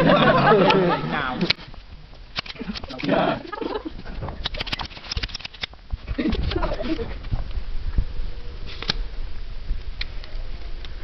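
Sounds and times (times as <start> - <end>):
people laughing softly: 0.0 - 1.6, 2.5 - 4.8, 6.0 - 7.2.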